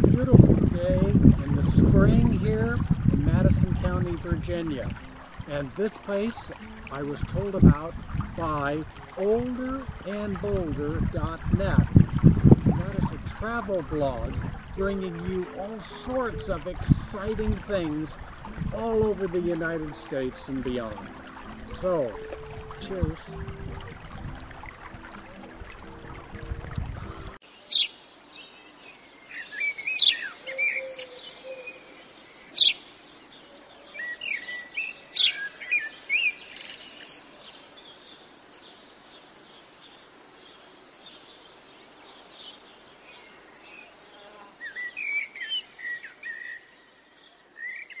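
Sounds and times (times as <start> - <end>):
songbirds chirping: 0.0 - 48.0
held musical tones: 0.8 - 27.4.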